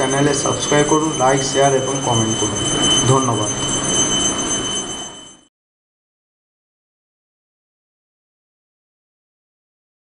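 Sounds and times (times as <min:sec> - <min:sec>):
high-pitched whine of held tones: 0:00.0 - 0:05.5.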